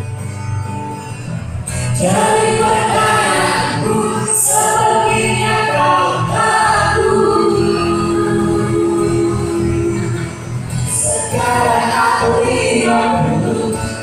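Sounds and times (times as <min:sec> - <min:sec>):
acoustic guitar: 0:00.0 - 0:14.0
vocal group singing in harmony: 0:01.8 - 0:14.0.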